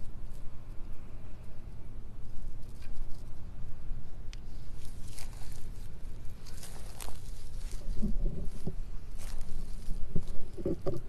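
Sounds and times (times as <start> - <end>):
low outdoor rumble: 0.0 - 11.0
rustling in dry grass: 0.0 - 11.0
footsteps on grass: 4.5 - 10.7.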